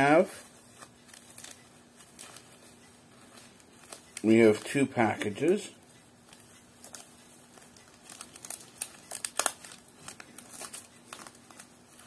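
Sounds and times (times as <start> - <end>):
package rustling and clicking: 6.3 - 12.0.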